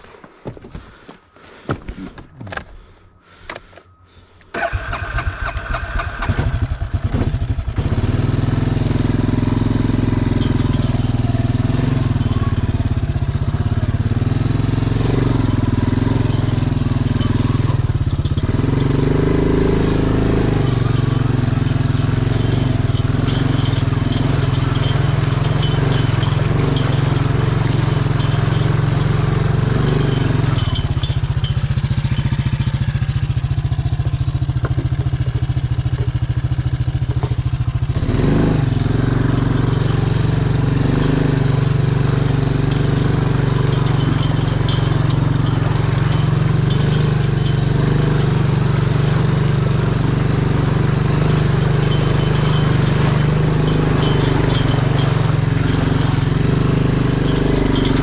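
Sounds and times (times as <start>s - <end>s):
starter cranking engine: 4.4s - 58.0s
engine running at varying revs: 4.6s - 58.0s.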